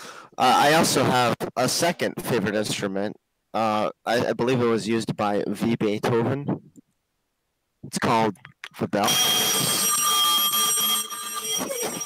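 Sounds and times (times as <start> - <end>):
bell ringing: 9.0 - 12.0.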